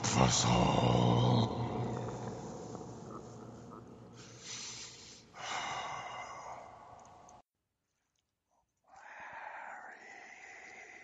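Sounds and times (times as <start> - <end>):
person breathing close to microphone: 2.2 - 7.3.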